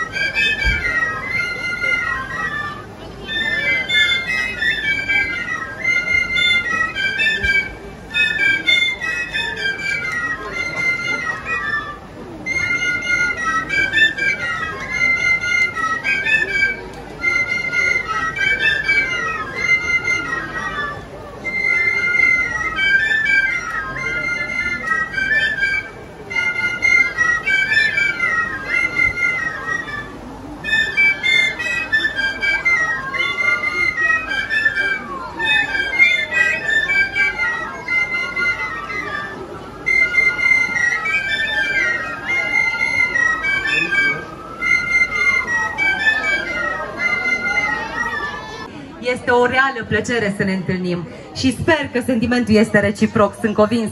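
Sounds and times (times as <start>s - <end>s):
flutes playing folk melody: 0.0s - 53.9s.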